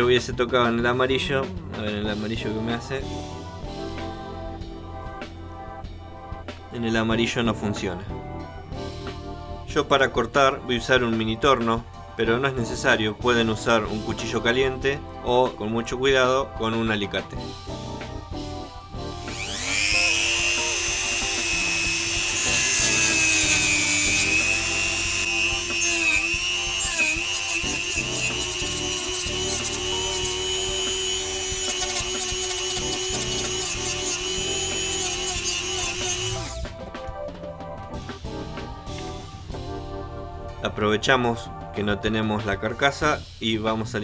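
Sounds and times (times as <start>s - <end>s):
rotary tool cutting plastic: 19.3s - 36.6s.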